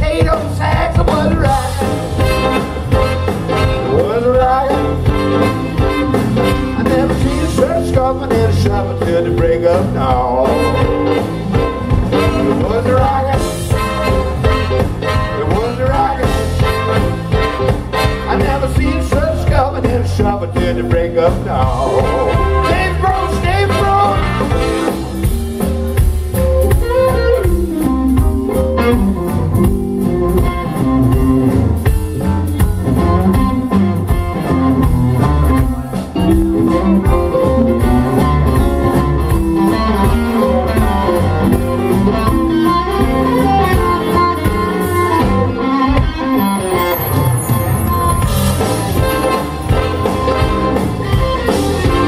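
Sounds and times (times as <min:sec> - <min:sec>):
drum kit steady beat: 0:00.0 - 0:52.0
live blues band: 0:00.0 - 0:52.0.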